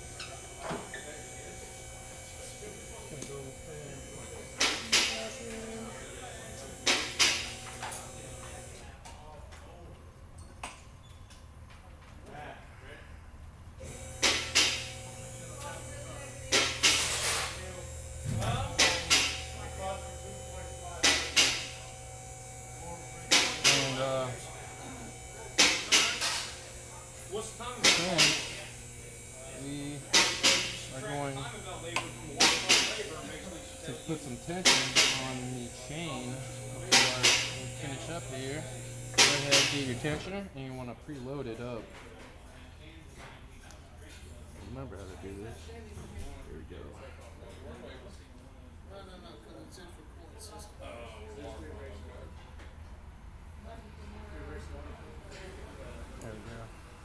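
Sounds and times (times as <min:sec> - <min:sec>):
steady low hum: 0:00.0 - 0:09.0, 0:12.4 - 0:41.8.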